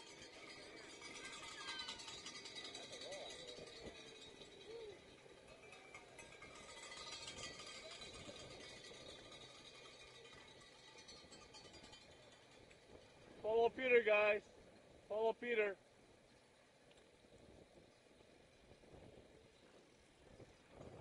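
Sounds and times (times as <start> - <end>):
faint distant voices: 0.0 - 16.8.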